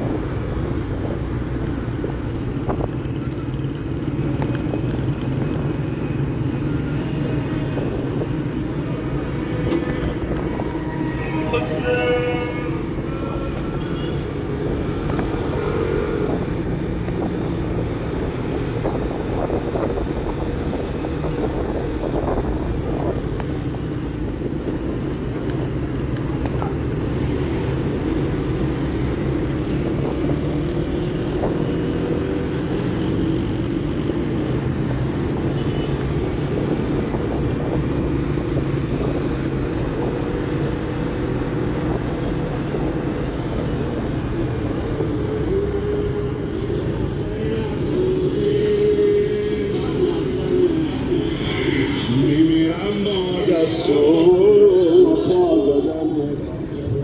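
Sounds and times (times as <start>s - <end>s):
rumble of traffic: 0.0s - 57.0s.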